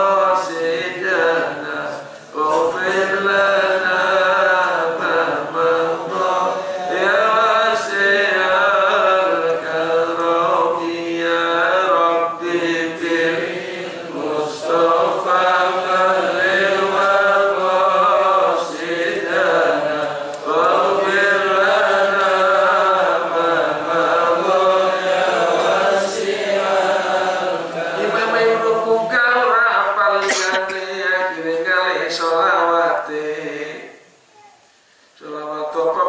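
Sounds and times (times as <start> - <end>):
man chanting: 0.0 - 13.2, 27.9 - 33.9, 35.2 - 36.0.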